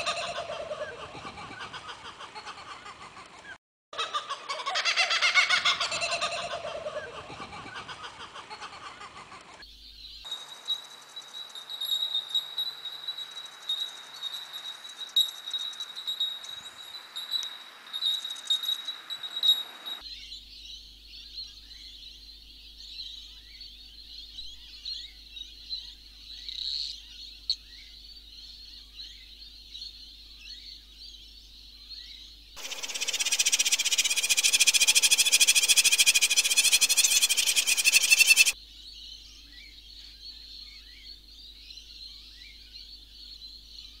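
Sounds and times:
chorus of high chirps: 32.6 - 38.6.

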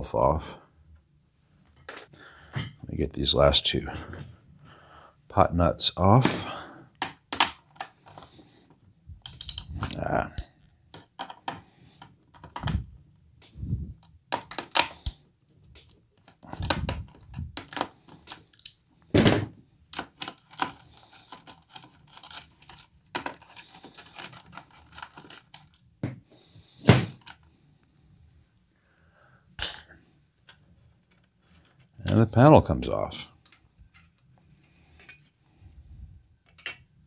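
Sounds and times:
metallic clicks and knocks: 9.2 - 11.4.

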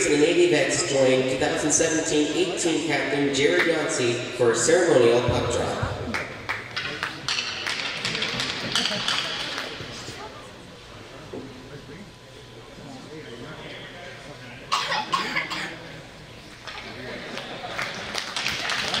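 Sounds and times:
crowd chattering: 0.0 - 19.0
sharp taps and claps: 6.1 - 9.9, 17.4 - 19.0
person coughing: 14.7 - 15.8.

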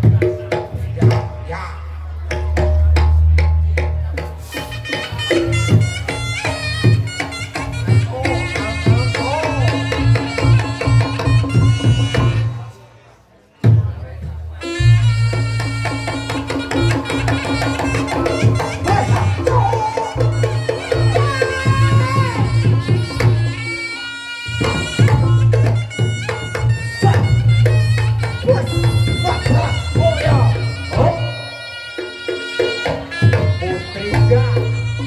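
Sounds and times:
drum beats: 0.0 - 12.8, 13.6 - 35.0
reedy shawm melody: 0.4 - 12.8, 14.5 - 35.0.

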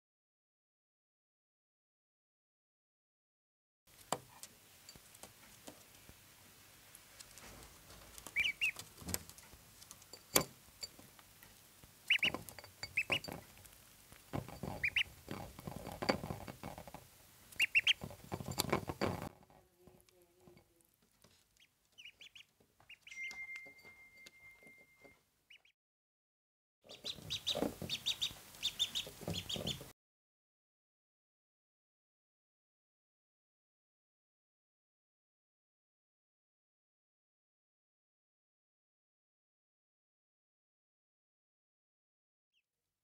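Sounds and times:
ducklings peeping: 8.2 - 9.4, 12.0 - 13.4, 14.7 - 15.3, 17.5 - 18.2, 21.6 - 23.3, 25.5 - 25.7, 26.9 - 29.9
bills tapping on ceramic plate: 8.7 - 11.1, 12.1 - 20.7.

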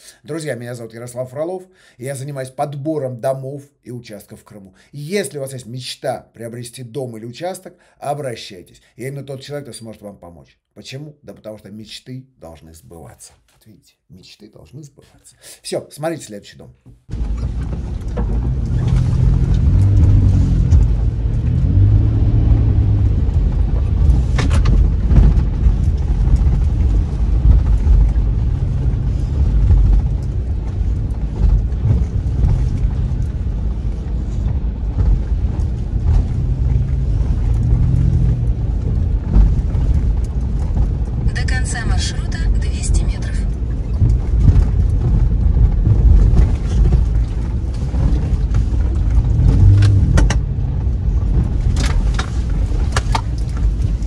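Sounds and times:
car knocking over bumps: 16.9 - 42.0, 43.5 - 54.0
car engine and tyres rumbling: 17.0 - 54.0.

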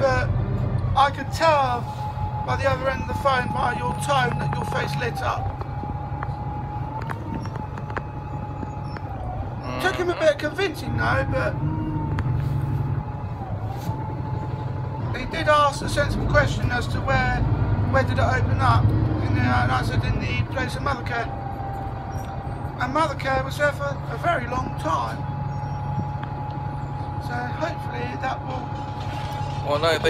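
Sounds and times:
vehicle engine low rumble: 0.0 - 30.0.

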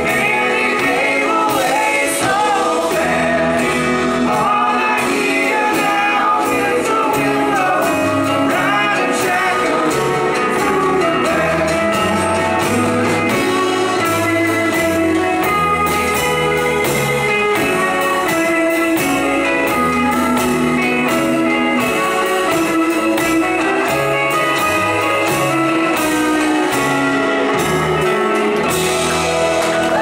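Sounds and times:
rock band playing: 0.0 - 30.0.

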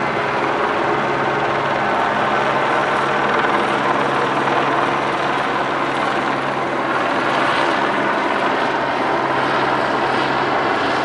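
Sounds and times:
helicopter drone: 0.0 - 11.0.

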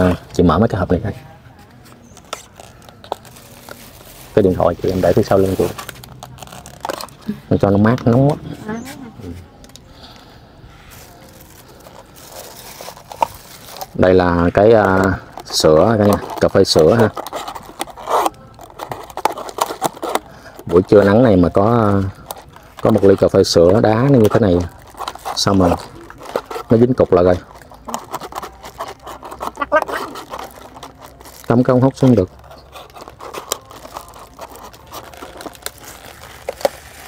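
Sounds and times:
plastic containers clicking and scraping: 0.0 - 9.9, 10.9 - 37.0.

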